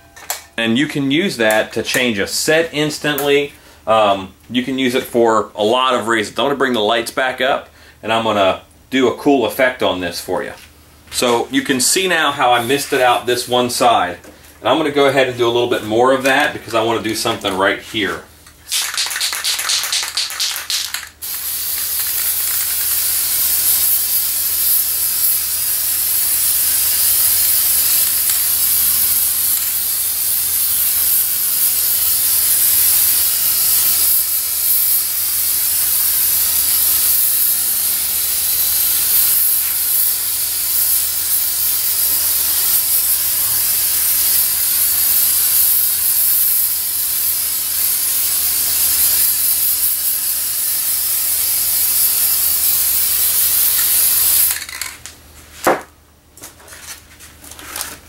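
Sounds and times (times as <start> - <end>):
spray paint hissing: 12.5 - 13.2, 18.6 - 55.0
spray can rattling: 18.4 - 55.1.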